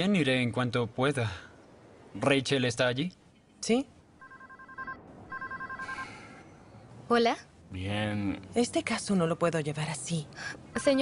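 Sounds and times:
phone ringing with warbling trill: 4.2 - 6.1.

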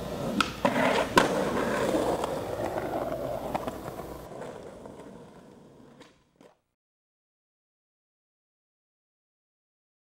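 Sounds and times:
skateboard landing clack: 0.0 - 6.6
skateboard wheels rolling on concrete: 0.0 - 6.8.

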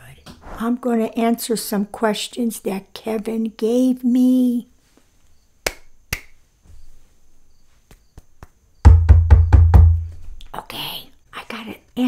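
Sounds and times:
rapid knocks: 8.2 - 10.2
deep thud on microphone: 8.9 - 10.1.

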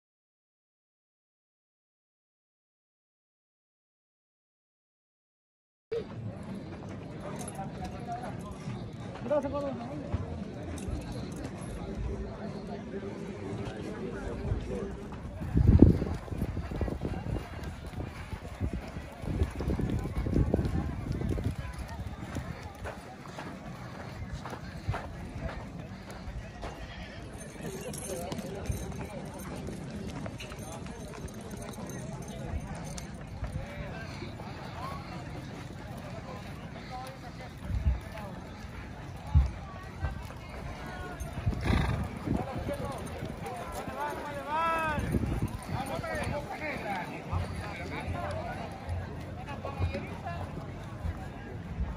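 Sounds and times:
people talking: 5.9 - 51.9
horse hooves on sandy dirt: 6.0 - 51.9.

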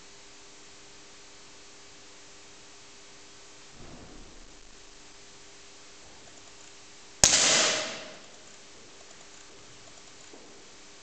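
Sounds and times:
hissing echo in a hall: 3.7 - 6.4, 7.2 - 8.8
pistol shot: 7.2 - 8.5.

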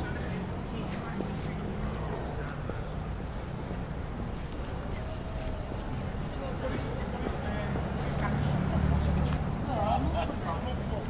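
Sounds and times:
low traffic rumble: 0.0 - 11.0
voices of passers-by: 0.0 - 11.0.

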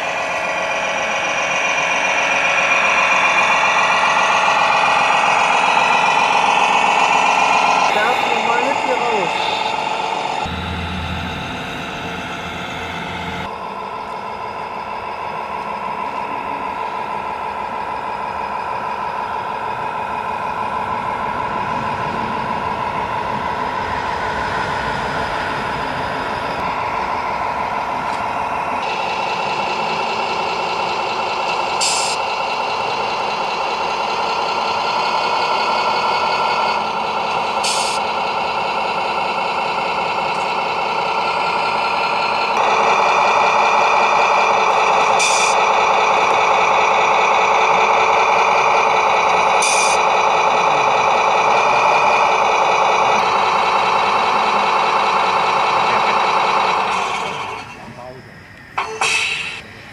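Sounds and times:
simulated diesel truck engine: 0.0 - 59.9
short air hisses: 59.0 - 59.7.

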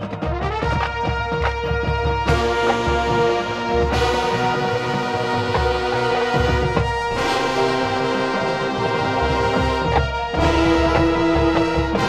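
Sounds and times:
marching band playing: 0.0 - 12.0
brass holding sustained chords: 0.3 - 12.0.

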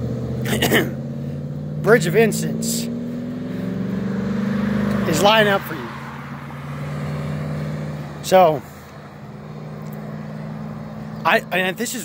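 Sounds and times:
road traffic hum: 0.0 - 12.0
vehicle engine running: 0.0 - 12.0.

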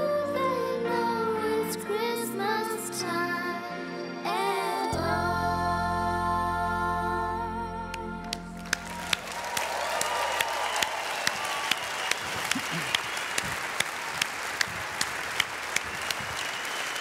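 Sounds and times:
audience applauding: 8.3 - 17.0
loud rhythmic claps: 8.3 - 17.0
audience cheering: 8.6 - 17.0.

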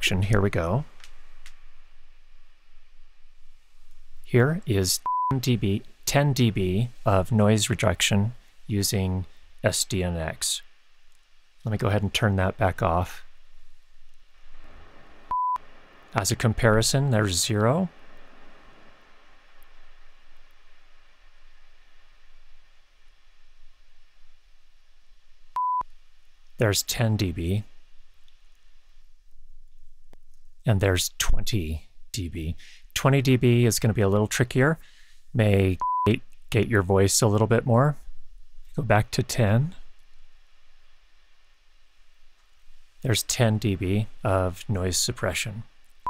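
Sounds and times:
faint low hum: 0.0 - 46.0
steady background hiss: 0.0 - 46.0.

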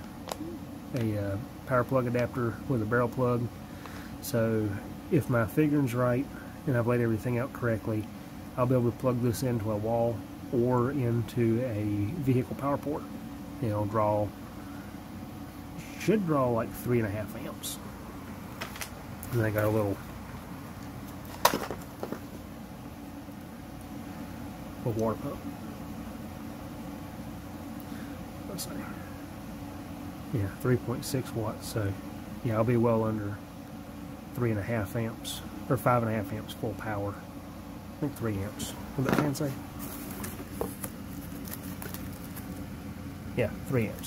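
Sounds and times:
low steady hum: 0.0 - 44.0
cardboard box rustling: 39.1 - 42.6.

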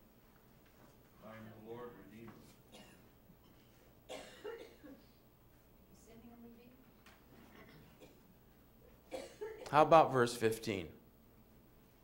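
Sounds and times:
person coughing: 2.7 - 3.1, 4.1 - 5.1, 9.1 - 9.8.

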